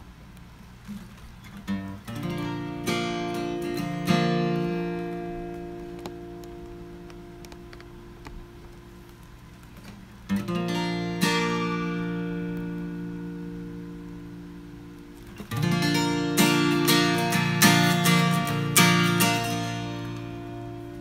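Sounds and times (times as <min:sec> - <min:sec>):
acoustic guitar strumming: 0:01.4 - 0:21.0.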